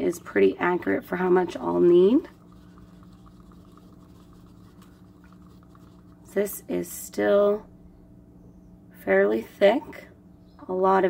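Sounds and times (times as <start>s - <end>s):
stir stick scraping plastic cup: 1.2s - 6.3s.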